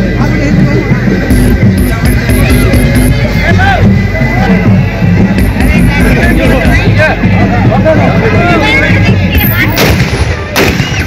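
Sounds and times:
crowd voices: 0.0 - 11.0
loud dance music: 1.2 - 3.8, 5.2 - 7.1
loud gunshots: 9.7 - 11.0.

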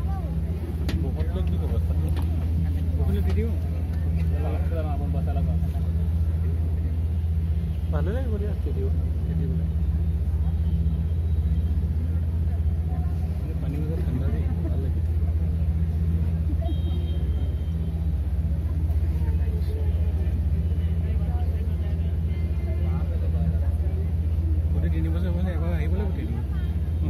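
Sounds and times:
boat engine droning: 0.0 - 27.0.

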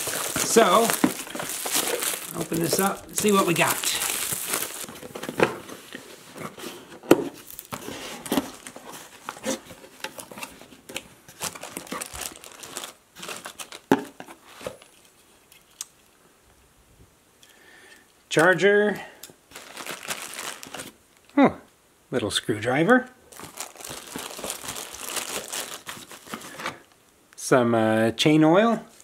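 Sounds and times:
plastic wrap crinkling and tearing: 0.0 - 6.3, 7.3 - 15.9, 19.5 - 21.4, 23.3 - 27.0
cardboard and plastic bags rustling: 0.0 - 15.2, 19.5 - 21.3, 23.2 - 27.0.

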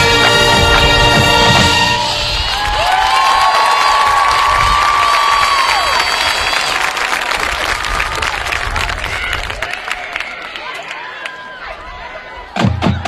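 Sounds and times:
marching band music: 0.0 - 2.7
long high cheering calls: 0.0 - 8.4
crowd applauding and cheering: 0.0 - 13.0.

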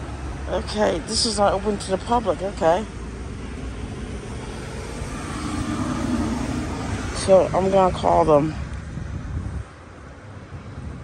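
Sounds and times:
low engine drone: 0.0 - 8.8
humming tone: 5.0 - 7.2.

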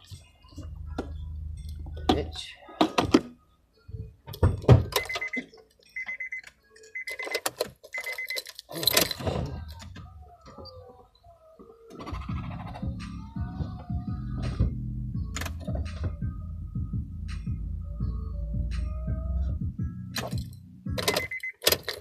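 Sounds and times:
music with heavy deep bass: 0.0 - 2.4, 12.1 - 21.2
knocks and clicks: 20.2 - 22.0.

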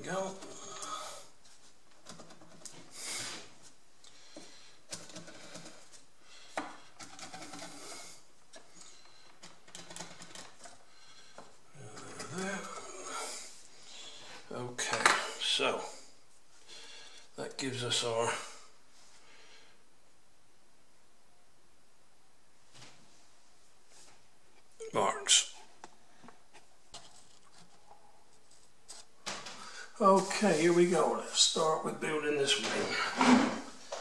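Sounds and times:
wood strips and tools clattering: 32.6 - 34.0.

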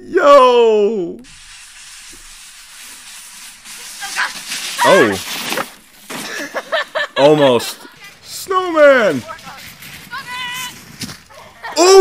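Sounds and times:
sled sliding on snow: 1.3 - 12.0.

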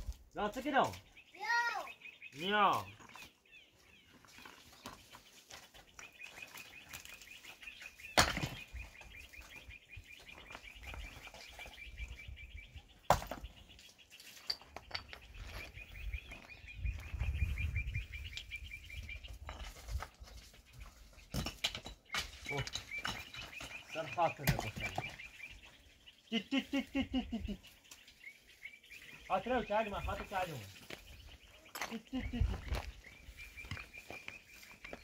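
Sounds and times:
footsteps scuffing on rubble: 2.9 - 11.8, 13.2 - 17.4, 19.0 - 25.6, 30.2 - 35.0
loose stones clacking: 13.1 - 15.7, 19.3 - 25.2, 31.7 - 32.9.

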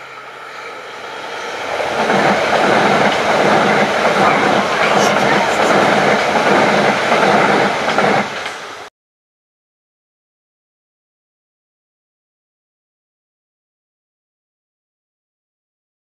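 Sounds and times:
train passing at speed: 0.0 - 8.9
wheel-on-rail noise: 0.0 - 8.9.

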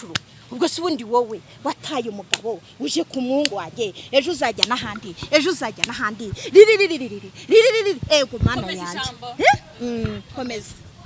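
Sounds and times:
woman yelping: 3.8 - 10.2.

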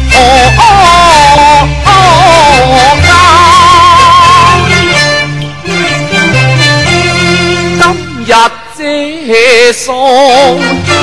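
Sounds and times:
bowed strings melody: 0.0 - 8.5.

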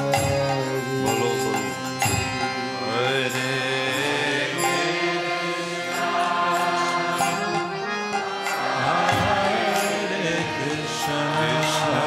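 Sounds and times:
man chanting: 0.0 - 4.4, 10.2 - 12.0
harmonium chords: 0.0 - 12.0.

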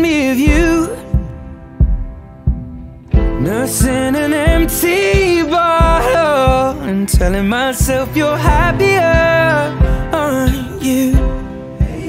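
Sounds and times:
low drum thumps: 0.0 - 12.0.

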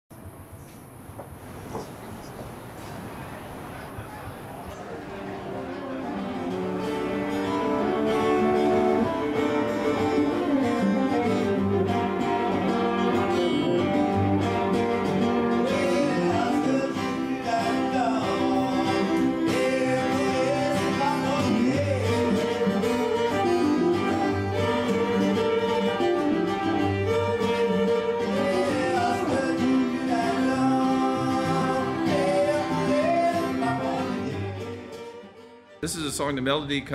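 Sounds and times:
acoustic guitar: 0.2 - 36.9
fiddle sliding between notes: 5.5 - 36.4.

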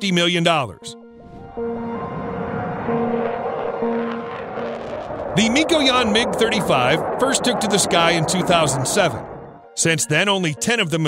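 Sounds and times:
background music low sustained notes: 0.0 - 11.0
fighter jet flying overhead: 1.1 - 9.8.

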